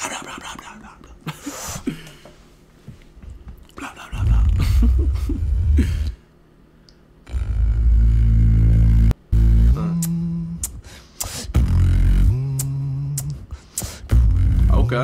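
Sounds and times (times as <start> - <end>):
beatboxing bass sounds: 3.8 - 6.2, 7.3 - 15.0
hummed pitched line: 3.8 - 6.2, 7.2 - 15.0.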